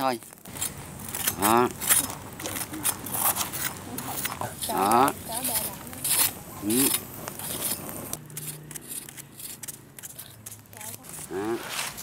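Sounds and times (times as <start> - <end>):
knife scraping fish skin: 0.6 - 12.0.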